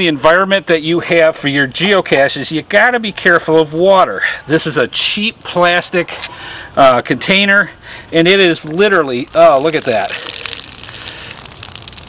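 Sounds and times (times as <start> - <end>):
water trickling onto leaf litter: 8.5 - 12.0.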